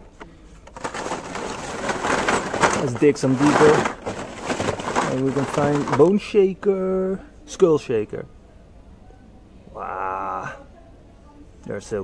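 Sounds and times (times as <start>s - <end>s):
cardboard and plastic rustling: 0.6s - 6.3s.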